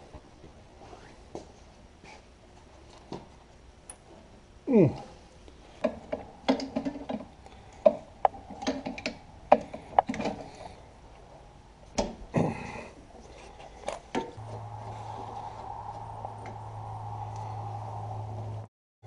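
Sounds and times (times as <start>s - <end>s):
steady low hum: 0.0s - 18.7s.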